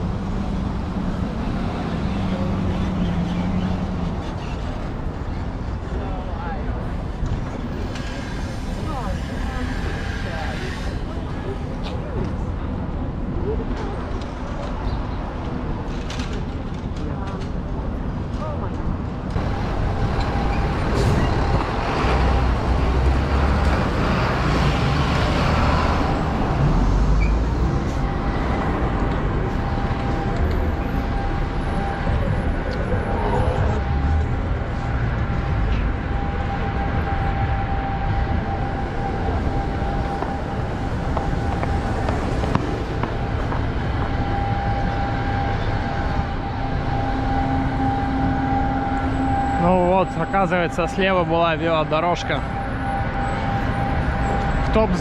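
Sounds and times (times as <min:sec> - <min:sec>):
car and truck traffic rumble: 0:00.0 - 0:55.0.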